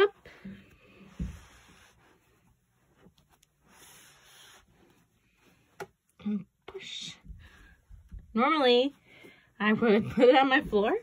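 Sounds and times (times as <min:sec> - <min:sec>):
towel fabric rubbing: 0:00.9 - 0:05.7.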